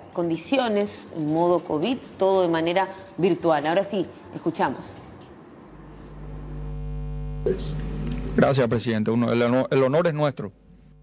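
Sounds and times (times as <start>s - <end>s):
electrical mains hum: 5.7s - 8.5s.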